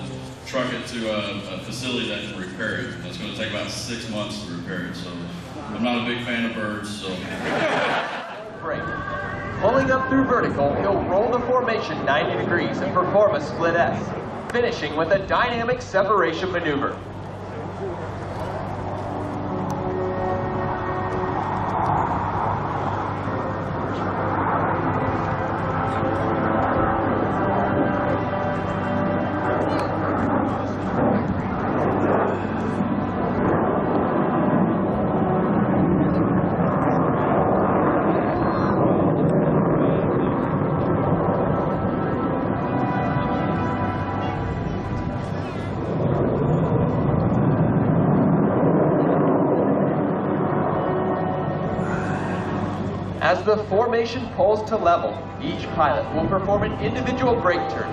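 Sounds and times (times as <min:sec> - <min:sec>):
jet engines rushing: 0:00.0 - 0:57.9
music over loudspeakers: 0:53.2 - 0:57.9.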